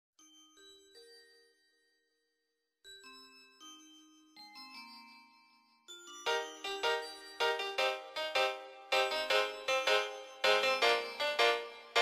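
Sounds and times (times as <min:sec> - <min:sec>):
bell-like chime notes: 0:00.2 - 0:12.0.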